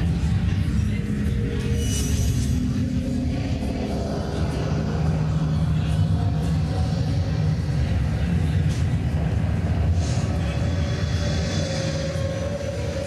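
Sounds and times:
low electronic drone: 0:00.0 - 0:13.0.

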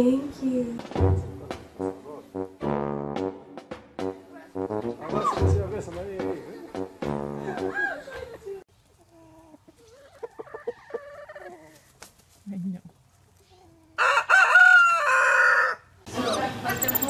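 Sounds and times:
chickens clucking softly: 0:08.9 - 0:12.0
rooster crowing: 0:14.0 - 0:15.9.

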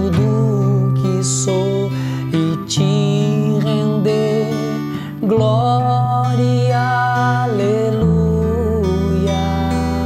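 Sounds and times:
fingerpicked acoustic guitar: 0:00.0 - 0:10.0.

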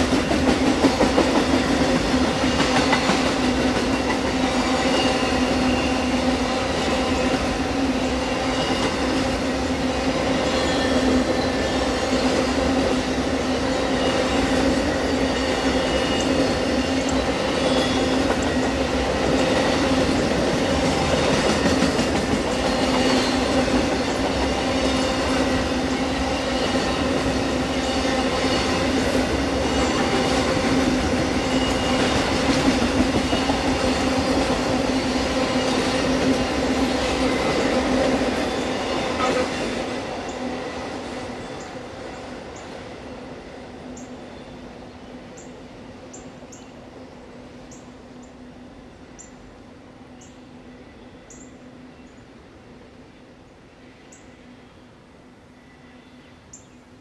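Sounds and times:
clickety-clack over rail joints: 0:00.0 - 0:09.5, 0:10.2 - 0:42.9
train wheels rumbling on rails: 0:00.0 - 0:50.3.

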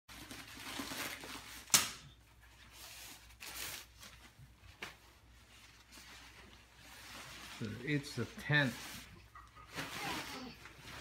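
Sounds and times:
bubble wrap crinkling: 0:00.1 - 0:11.0.

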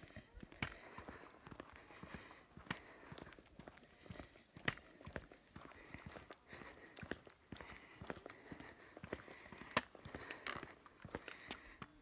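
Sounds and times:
faint footsteps on a path: 0:00.0 - 0:12.0.

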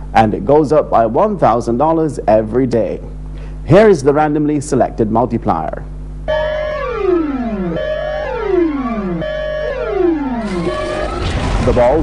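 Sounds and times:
synthesized electronic music: 0:06.3 - 0:11.4.

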